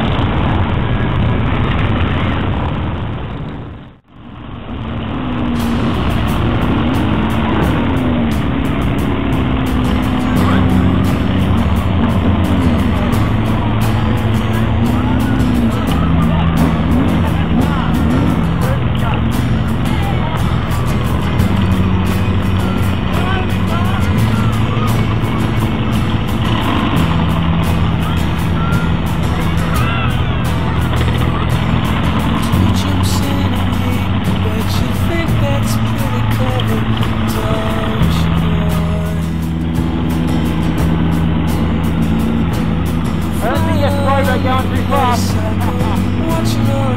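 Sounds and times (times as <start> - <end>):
motorcycle engines running: 0.0 - 46.9
wind buffeting microphone: 0.0 - 46.9.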